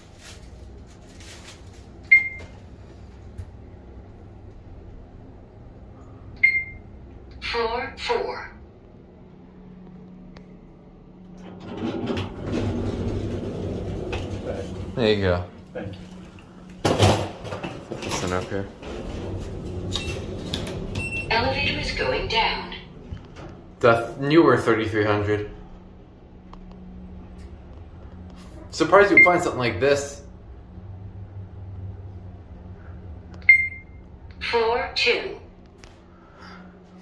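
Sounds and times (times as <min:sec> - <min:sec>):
faint steady hum: 0:00.0 - 0:37.0.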